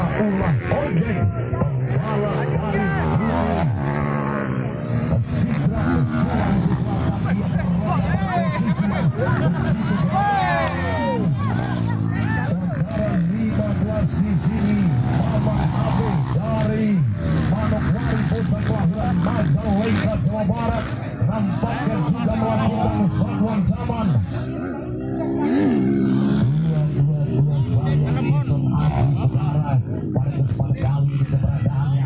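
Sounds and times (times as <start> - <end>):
motorcycle engines revving: 0.0 - 32.0
spectators chattering: 0.0 - 32.0.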